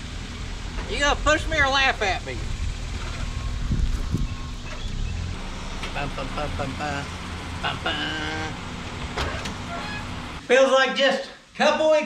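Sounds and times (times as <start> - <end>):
car engine rumbling at low revs: 0.0 - 10.4.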